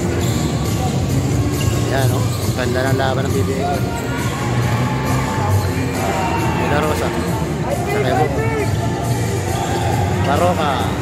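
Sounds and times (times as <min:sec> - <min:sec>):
arena music: 0:00.0 - 0:11.0
crowd chatter: 0:00.0 - 0:11.0.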